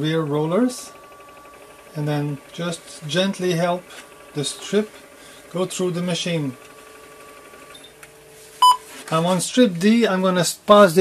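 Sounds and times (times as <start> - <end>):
short electronic beep: 8.6 - 8.9.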